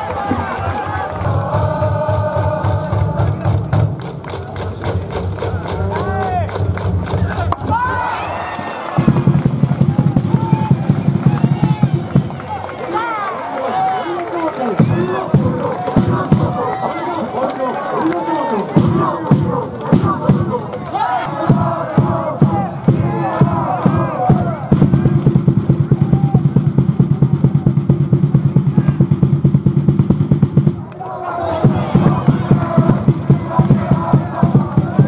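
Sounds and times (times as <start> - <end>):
crowd shouting and chanting: 0.0 - 27.8, 30.6 - 35.0
music with even beat: 21.4 - 30.8, 31.6 - 35.0.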